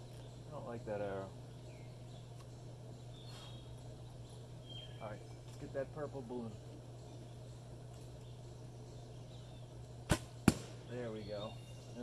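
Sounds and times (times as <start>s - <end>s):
arrow popping balloon: 10.1s - 10.9s.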